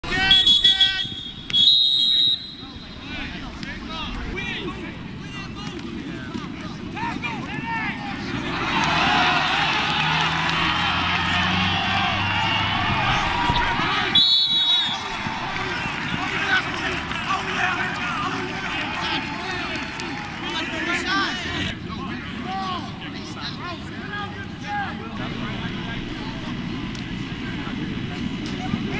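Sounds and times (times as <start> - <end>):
whistle blasts: 0.2 - 3.0, 14.0 - 15.2
many people chattering: 2.0 - 28.9.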